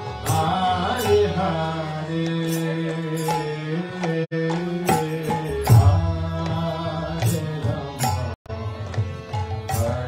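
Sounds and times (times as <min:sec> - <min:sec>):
harmonium: 0:00.0 - 0:10.0
man chanting into a microphone: 0:00.2 - 0:08.4.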